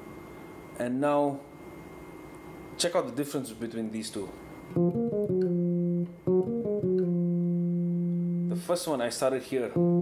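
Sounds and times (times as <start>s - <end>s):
bass guitar played fingerstyle: 4.7s - 8.8s, 9.7s - 10.0s.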